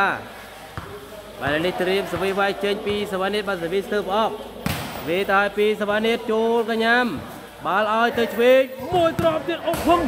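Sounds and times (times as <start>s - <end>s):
man talking: 1.2s - 10.0s
volleyball being struck: 4.6s - 5.1s.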